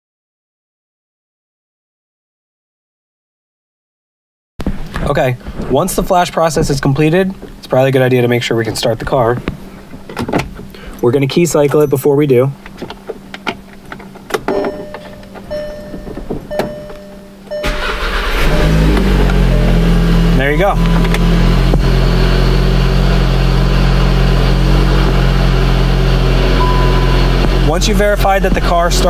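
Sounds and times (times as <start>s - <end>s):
car engine starting and idling: 17.5s - 29.0s.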